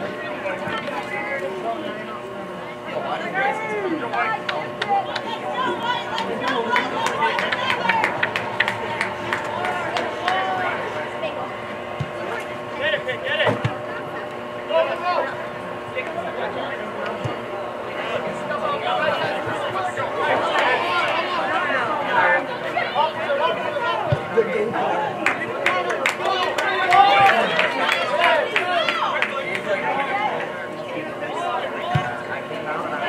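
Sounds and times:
steady hum: 0.0s - 33.0s
people shouting and calling out: 3.0s - 33.0s.

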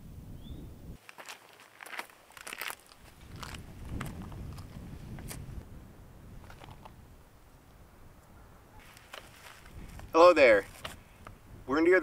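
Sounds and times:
wind on microphone: 0.0s - 1.0s, 3.0s - 12.0s
footsteps crunching on gravel: 1.0s - 5.6s, 8.8s - 11.0s.

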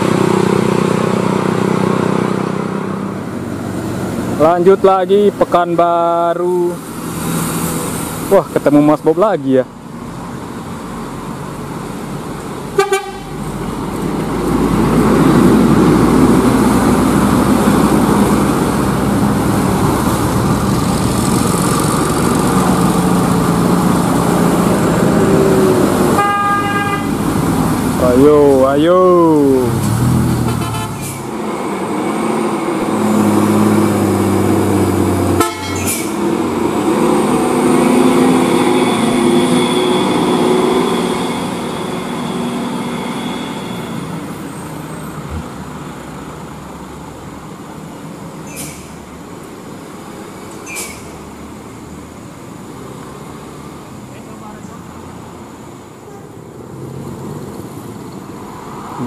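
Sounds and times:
trucks and cars passing: 0.0s - 59.0s.

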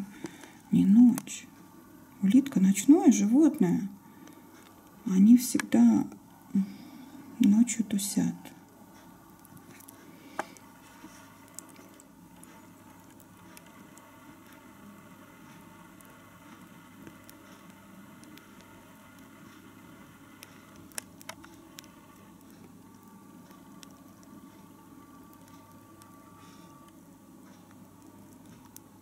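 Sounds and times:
snails eating faint crackling: 0.0s - 29.0s.

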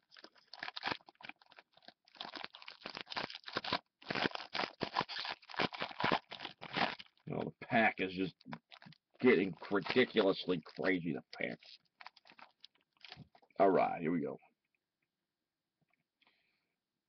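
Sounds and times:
foil wrapper crinkling: 0.0s - 7.4s, 8.2s - 13.5s.

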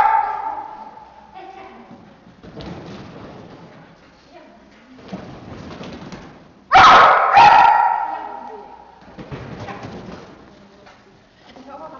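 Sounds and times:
dog barking with echo: 0.0s - 1.0s, 6.7s - 8.9s.

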